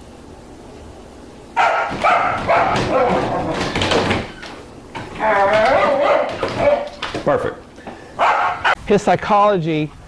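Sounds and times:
dog crying: 1.6s - 4.4s, 5.1s - 7.1s, 8.2s - 8.8s.

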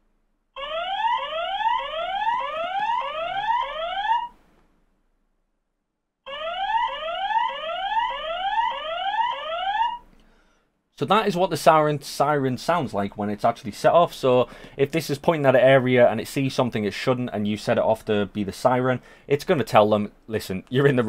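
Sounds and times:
siren rising whoop: 0.6s - 4.4s, 6.3s - 10.0s.

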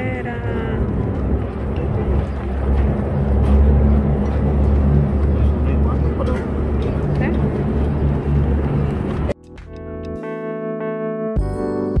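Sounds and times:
low street rumble: 0.0s - 9.4s.

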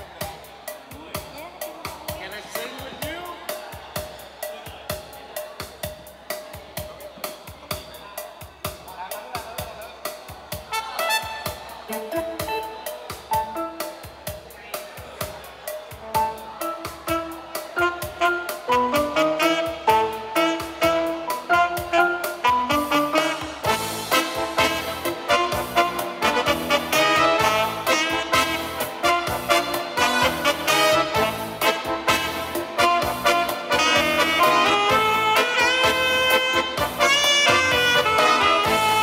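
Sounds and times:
steady drum beat: 0.0s - 39.0s
saxophone melody: 10.6s - 14.1s, 16.0s - 39.0s.

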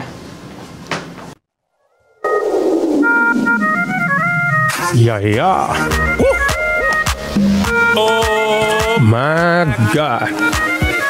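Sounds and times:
room noise: 2.0s - 8.8s.

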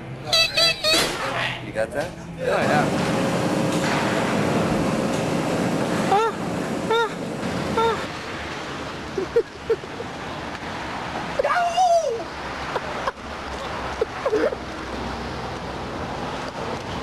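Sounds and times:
loud steady noise: 2.4s - 9.1s
person shouting: 6.1s - 7.2s, 7.8s - 8.1s, 11.4s - 12.3s.

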